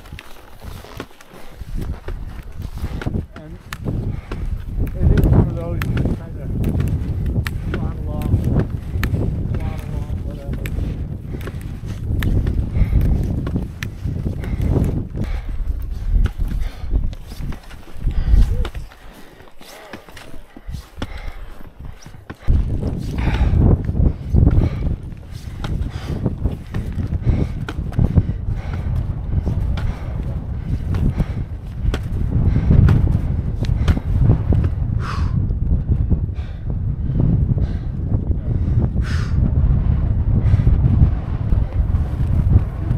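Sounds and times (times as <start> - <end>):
skis sliding on snow: 0.0 - 3.8, 15.9 - 23.1
wind rumble on microphone: 0.0 - 19.4, 20.4 - 42.9.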